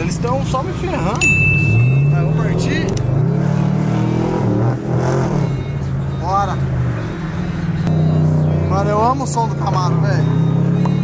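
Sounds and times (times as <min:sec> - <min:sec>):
car engine pulling away: 0:00.0 - 0:11.0.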